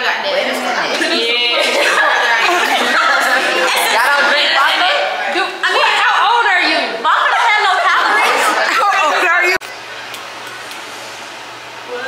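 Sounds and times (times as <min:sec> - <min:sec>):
women chattering: 0:00.3 - 0:09.6.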